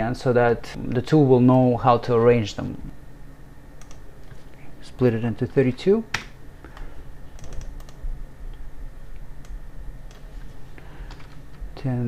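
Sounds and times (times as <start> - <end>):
low steady hum: 0.0 - 12.0
keyboard and mouse clicks: 7.4 - 8.0.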